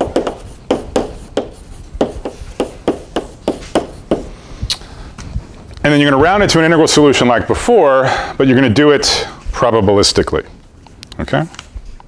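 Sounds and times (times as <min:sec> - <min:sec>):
chalk tapping on blackboard: 0:00.0 - 0:04.3.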